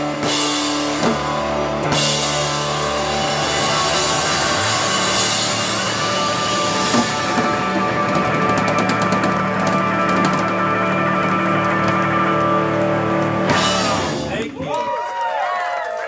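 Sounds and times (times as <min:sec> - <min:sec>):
live rock band sustained chord: 0:00.0 - 0:14.4
drums and cymbals crashing: 0:00.0 - 0:14.6.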